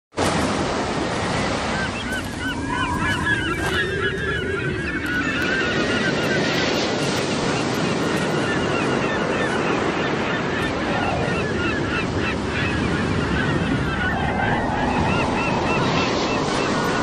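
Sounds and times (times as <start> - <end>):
sea surf washing: 0.2 - 17.0
flock of birds calling: 1.2 - 17.0.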